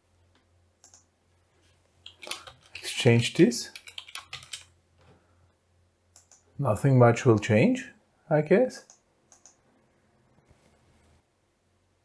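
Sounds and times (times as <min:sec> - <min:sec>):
faint low hum: 0:00.0 - 0:12.0
faint keyboard clicks: 0:00.3 - 0:01.1, 0:02.0 - 0:02.8, 0:03.7 - 0:05.1, 0:06.1 - 0:06.5, 0:08.8 - 0:09.6.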